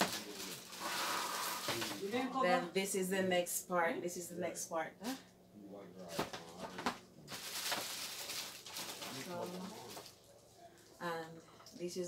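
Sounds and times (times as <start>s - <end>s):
plastic wrapping rustling: 0.0s - 2.3s, 6.1s - 11.0s.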